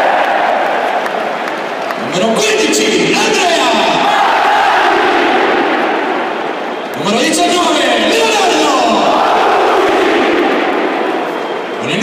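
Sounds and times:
stadium crowd shouting in unison: 0:00.0 - 0:12.0.

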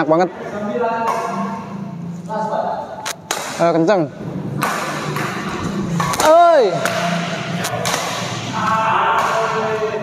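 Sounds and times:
man speaking indistinctly: 0:06.0 - 0:07.9.

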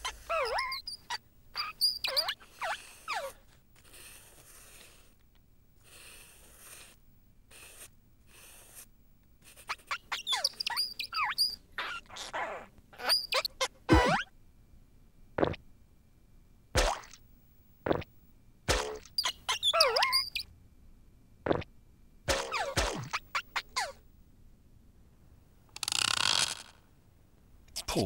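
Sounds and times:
cartoon chirps and electronic tones: 0:13.0 - 0:14.3.

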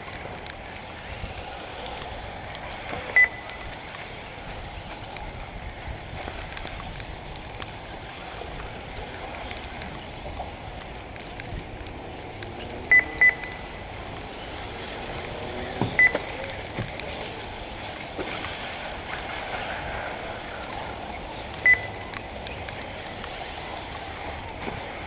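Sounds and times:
electric rc buggies passing: 0:00.0 - 0:06.8, 0:13.6 - 0:25.0
outdoor background noise: 0:00.0 - 0:25.0
short high electronic beeps: 0:03.2 - 0:03.6, 0:12.9 - 0:13.8, 0:16.0 - 0:16.3, 0:21.6 - 0:22.0.

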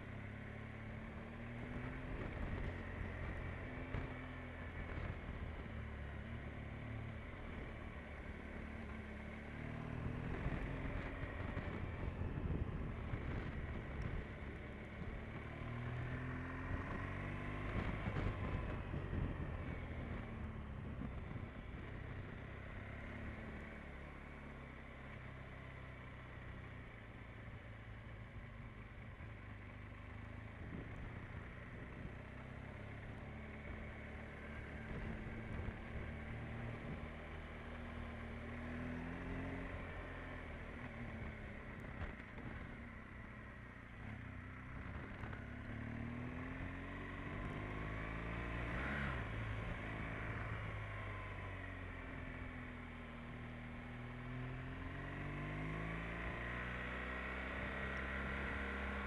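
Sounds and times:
road noise: 0:00.0 - 0:59.0
motorcycle engine revving: 0:29.9 - 0:59.0.

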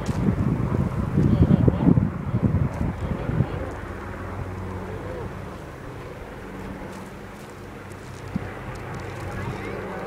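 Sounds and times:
distant propeller engines droning: 0:00.0 - 0:10.0
wind on microphone: 0:00.0 - 0:10.0.

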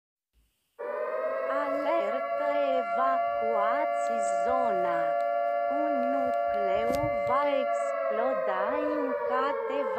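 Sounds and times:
electronic alarm tone: 0:00.8 - 0:09.9.

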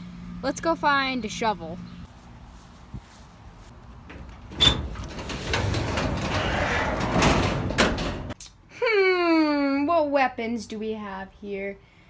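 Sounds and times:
door scraping open: 0:04.1 - 0:08.4.

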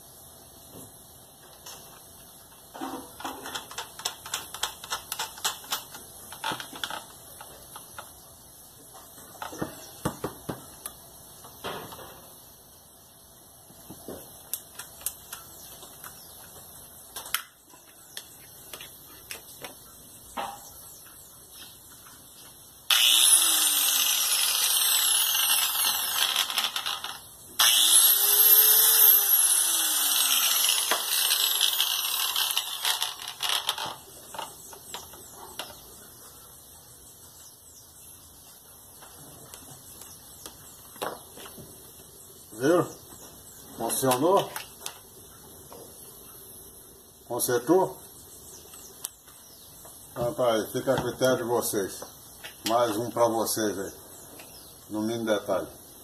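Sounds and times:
clicks and knocks of parts fitted: 0:02.8 - 0:08.1
angle grinder high whine: 0:22.9 - 0:35.8.

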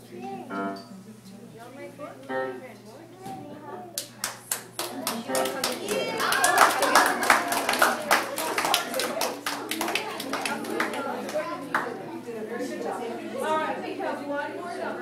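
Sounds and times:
audience applauding: 0:04.0 - 0:12.0
voices calling out: 0:04.9 - 0:14.9.

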